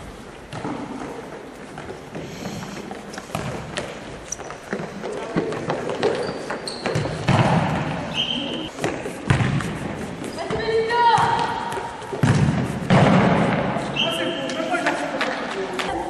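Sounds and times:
shoe squeaks: 4.1s - 5.2s, 5.8s - 7.3s, 8.0s - 8.8s, 10.2s - 11.2s, 13.9s - 14.6s
players' voices: 10.0s - 16.0s.

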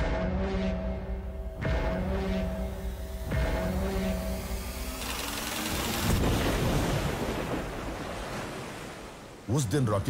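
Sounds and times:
wind: 3.9s - 10.0s
waves breaking: 5.0s - 10.0s.

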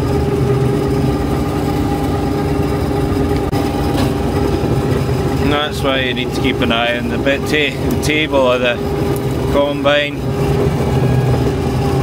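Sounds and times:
combine harvester engine and threshing drone: 0.0s - 12.0s
steady high tone: 0.0s - 12.0s.

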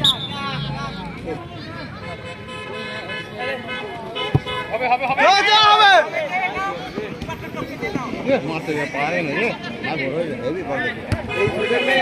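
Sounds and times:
spectators' voices: 0.0s - 12.0s
horn sounding steadily: 1.9s - 4.9s.

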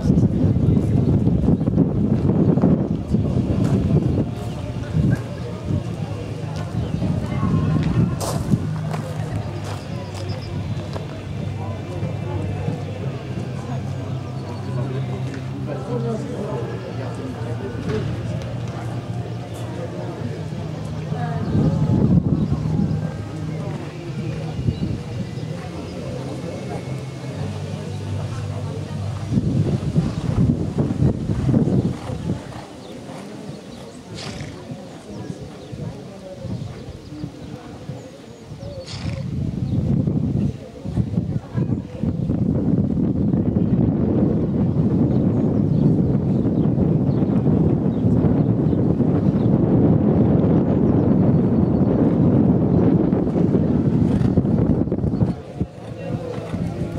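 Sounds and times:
wind buffeting microphone: 0.0s - 56.9s.

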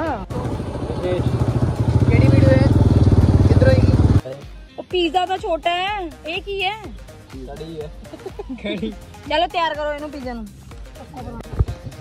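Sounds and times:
motorcycle engine running: 0.0s - 4.2s
music with singing voice: 4.2s - 12.0s.

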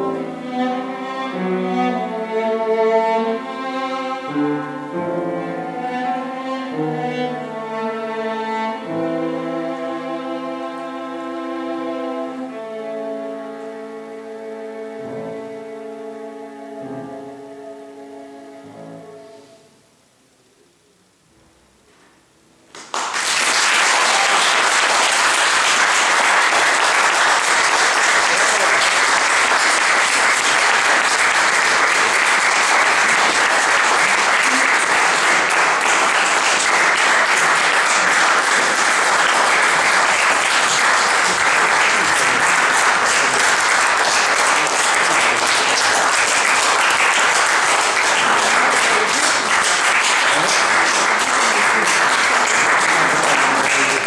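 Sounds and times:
audience applauding: 22.7s - 54.0s.

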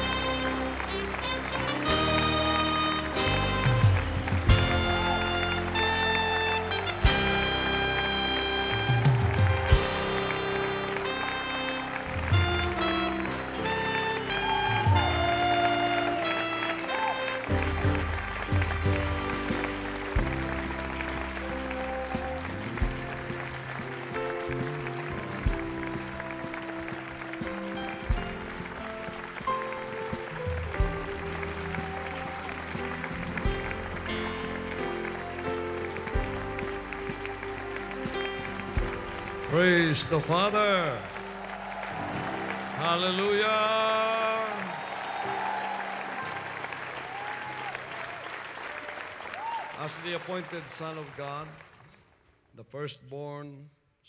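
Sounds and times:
instrumental processional music: 0.0s - 48.0s
large crowd applauding: 0.0s - 52.4s.

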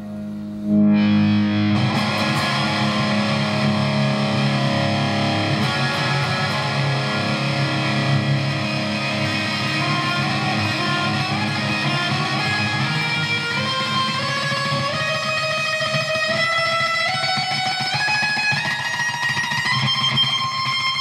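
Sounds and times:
distorted electric guitar: 0.0s - 21.0s.

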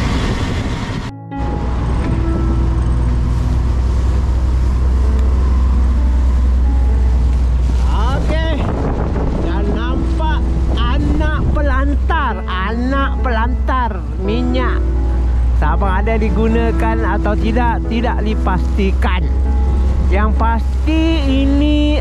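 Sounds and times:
boat engine drone: 0.0s - 22.0s
water noise: 0.0s - 22.0s
wind: 0.0s - 22.0s
music with wavering melody: 1.1s - 8.1s, 8.7s - 22.0s.

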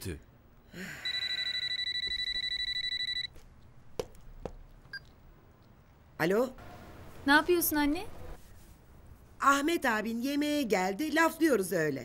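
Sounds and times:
telephone ringing: 1.0s - 3.4s.

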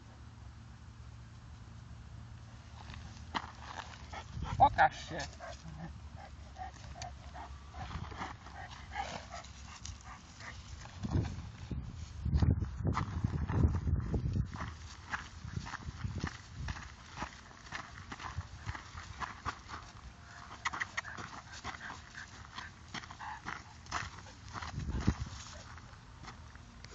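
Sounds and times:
footsteps in grass: 2.5s - 5.8s, 6.6s - 26.9s
dog panting: 3.0s - 11.2s, 17.2s - 25.7s
rustling in long grass: 7.8s - 17.7s.

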